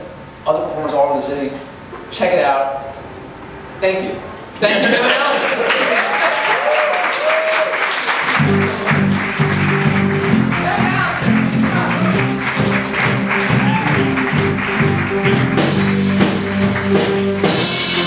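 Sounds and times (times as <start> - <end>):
audience applause: 4.8 - 18.0
music with low bass notes: 8.4 - 18.0.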